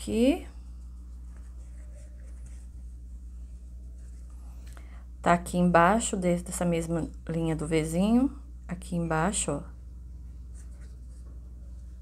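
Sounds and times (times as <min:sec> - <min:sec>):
steady low hum: 0:00.0 - 0:12.0
needle and thread rustling: 0:00.8 - 0:04.6.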